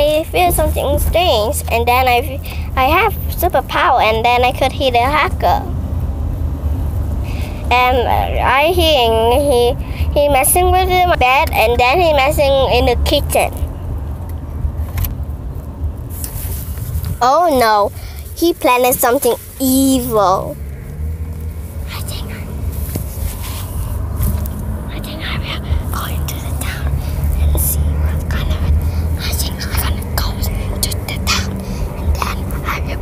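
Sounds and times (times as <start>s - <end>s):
road and engine rumble: 0.0s - 33.0s
person whispering: 21.9s - 22.5s, 24.9s - 33.0s.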